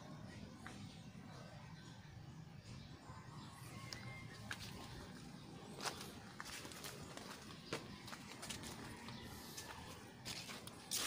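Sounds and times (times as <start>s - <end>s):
footsteps on soil and leaves: 3.8s - 11.0s.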